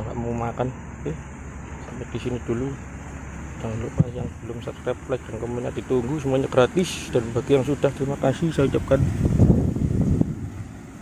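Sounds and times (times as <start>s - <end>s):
wind buffeting microphone: 3.9s - 4.5s, 7.4s - 11.0s.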